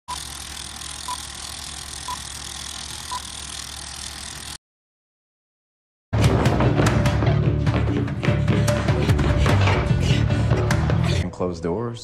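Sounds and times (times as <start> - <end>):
film projector whirring: 0.1 - 4.6.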